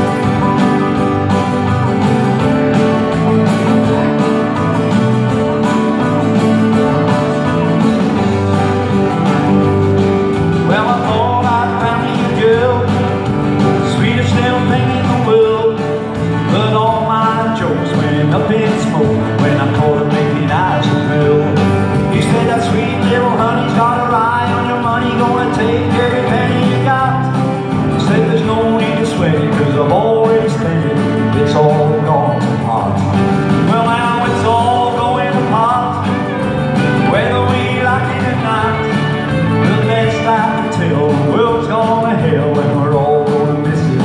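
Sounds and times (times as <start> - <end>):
live country music: 0.0 - 44.0
strummed acoustic guitar: 0.0 - 44.0.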